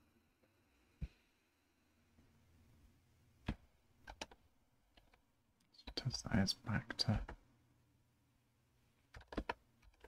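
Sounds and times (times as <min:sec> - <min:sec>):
computer keyboard typing: 0:04.0 - 0:05.2, 0:06.9 - 0:07.4, 0:09.1 - 0:10.0.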